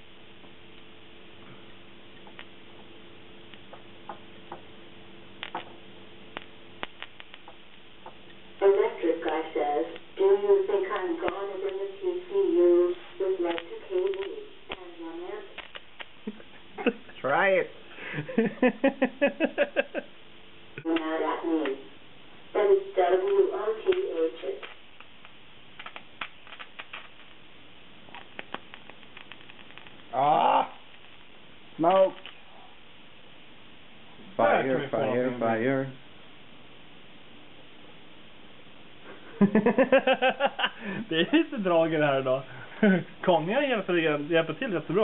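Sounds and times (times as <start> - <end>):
electric discharge clicks and snaps: 2.1 - 2.9, 3.5 - 4.6, 5.3 - 10.2, 10.9 - 11.9, 13.4 - 16.4, 23.2 - 30.2, 30.8 - 32.4
small sharp clicks: 6.3 - 7.8, 24.6 - 27.4, 28.1 - 30.1.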